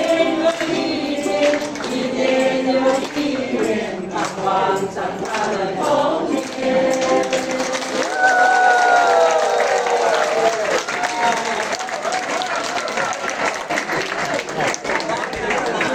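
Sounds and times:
audience applause: 6.4s - 15.9s.

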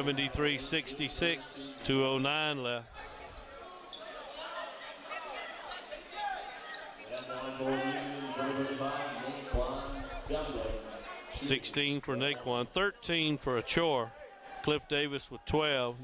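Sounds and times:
voices chattering in a gym: 0.0s - 16.0s.

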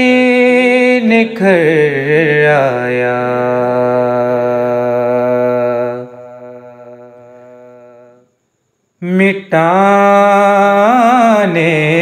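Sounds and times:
man chanting unaccompanied: 0.0s - 8.3s, 9.0s - 12.0s.

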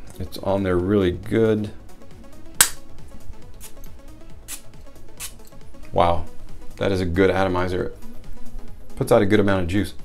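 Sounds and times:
soft background music: 0.0s - 10.0s
perfume spray hissing puffs: 3.6s - 5.5s.

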